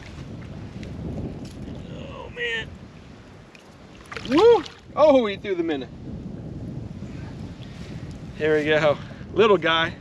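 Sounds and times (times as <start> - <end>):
low wind rumble on microphone: 0.0 - 10.0
faint water sloshing: 2.8 - 5.0.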